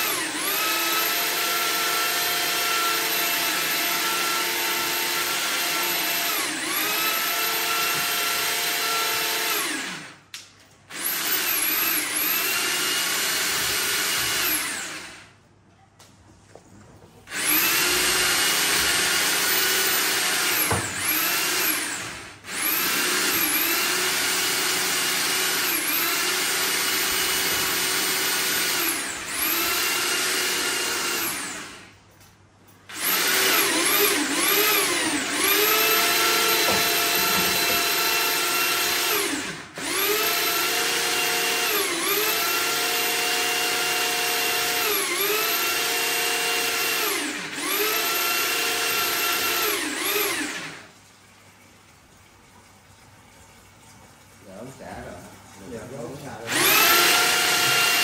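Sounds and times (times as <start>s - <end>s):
electric drill motor whining: 0.0s - 10.2s, 10.9s - 15.3s, 17.3s - 31.9s, 32.9s - 50.9s, 56.5s - 58.0s.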